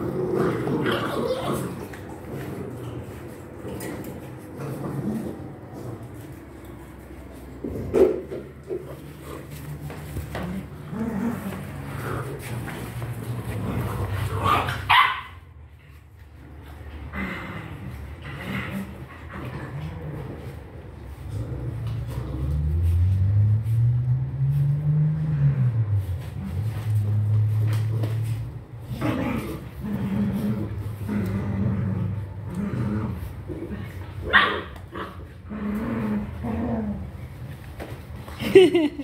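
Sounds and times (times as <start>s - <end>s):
puppies making low vocal sounds: 0.0s - 14.9s
puppy barking: 14.8s - 15.4s, 34.3s - 34.8s.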